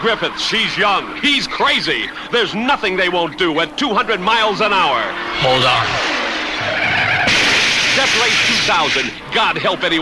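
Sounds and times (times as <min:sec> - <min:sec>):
car running: 0:00.0 - 0:10.0
tyres skidding: 0:00.0 - 0:10.0.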